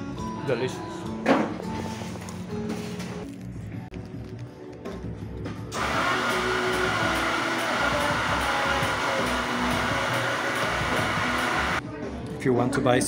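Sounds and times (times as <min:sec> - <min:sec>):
faint background music: 0:00.0 - 0:05.8, 0:11.4 - 0:13.0
coffee machine rushing: 0:05.7 - 0:11.8.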